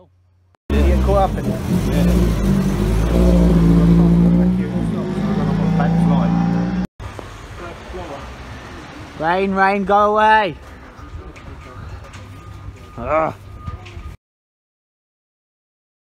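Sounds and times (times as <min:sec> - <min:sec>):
race car engines revving: 0:00.7 - 0:09.2.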